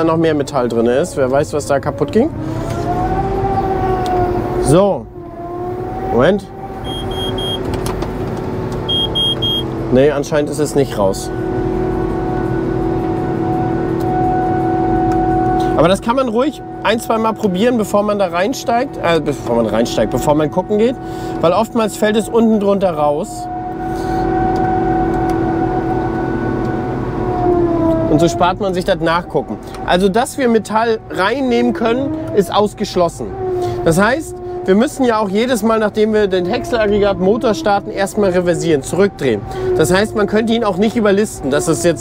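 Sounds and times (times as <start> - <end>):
engine low rumble: 0.0 - 42.0
harvester machine drone: 0.0 - 42.0
high electronic beeps: 6.8 - 7.6, 8.9 - 9.7.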